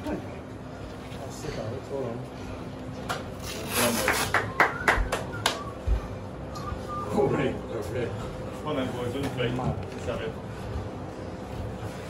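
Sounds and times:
people clapping: 0:03.7 - 0:05.9.

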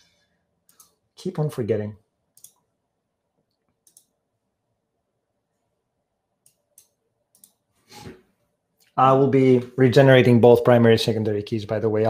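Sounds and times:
computer mouse clicks: 0:00.7 - 0:01.0, 0:02.4 - 0:02.7, 0:03.4 - 0:04.2, 0:06.4 - 0:07.7.

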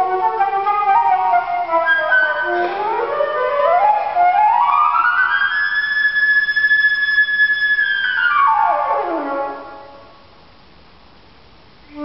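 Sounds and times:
flute playing: 0:00.0 - 0:10.2.

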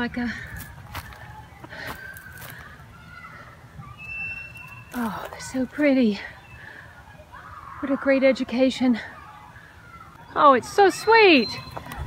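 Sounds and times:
low outdoor background: 0:00.0 - 0:12.0
footsteps on straw: 0:00.6 - 0:02.8.

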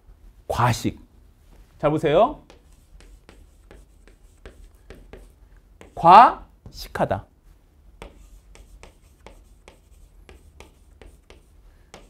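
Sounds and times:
chalk tapping on chalkboard: 0:02.4 - 0:06.1, 0:08.0 - 0:12.0.

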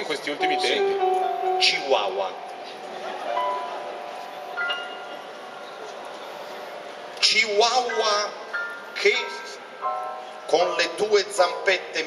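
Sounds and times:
soft high piano notes: 0:00.4 - 0:07.1.

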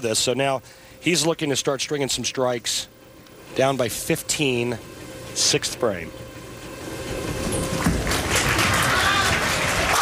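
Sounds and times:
bowling ball rolling: 0:06.7 - 0:09.9
crowd noise: 0:07.8 - 0:10.0.

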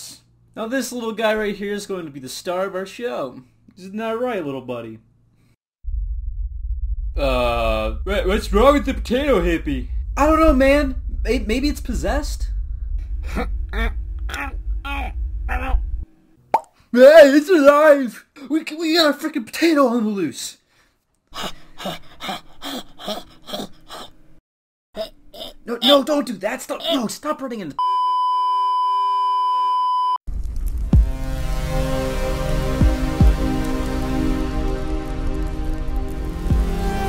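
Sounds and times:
falling boom: 0:05.8 - 0:16.3
low rumble: 0:05.8 - 0:16.4, 0:30.3 - 0:37.0
television test tone: 0:27.8 - 0:30.2.

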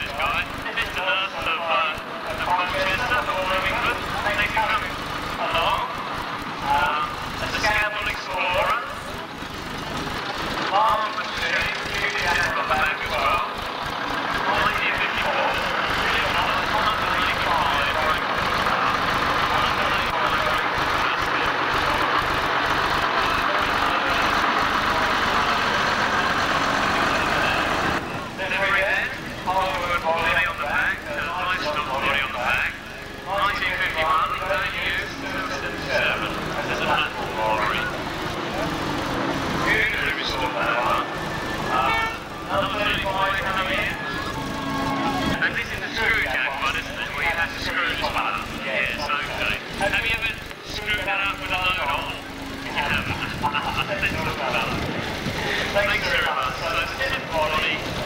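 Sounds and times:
indistinct voices: 0:00.0 - 0:58.0
lorry driving slowly past: 0:00.0 - 0:58.0
steady rushing noise: 0:33.7 - 0:58.0.

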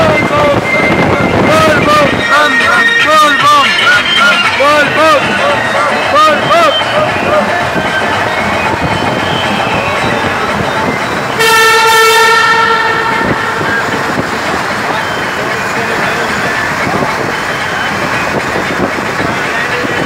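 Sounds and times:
vehicle driving through tunnel: 0:00.0 - 0:20.0
vehicle horn: 0:11.3 - 0:14.2.

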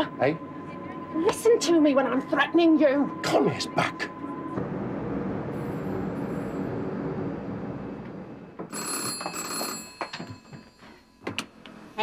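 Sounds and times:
steady rumbling noise: 0:00.4 - 0:08.7
desk telephone bell ringing: 0:08.6 - 0:11.3.

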